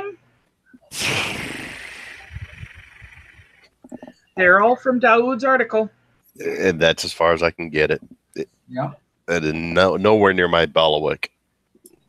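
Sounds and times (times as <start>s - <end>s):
hissing noise on headset microphone: 0.8s - 4.0s
low thumps: 1.0s - 4.6s.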